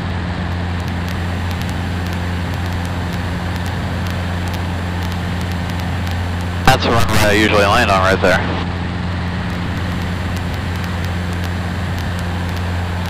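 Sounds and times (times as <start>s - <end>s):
propeller plane engine droning: 0.0s - 13.0s
rushing air noise: 1.0s - 13.0s.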